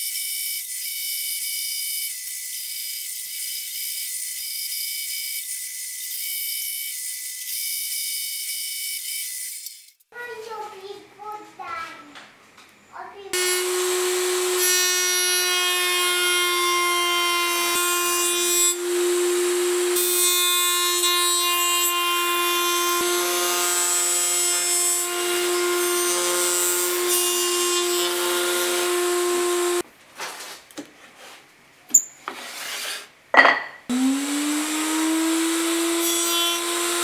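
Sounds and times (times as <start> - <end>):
router cutting wood: 13.3 - 29.8, 33.9 - 37.0.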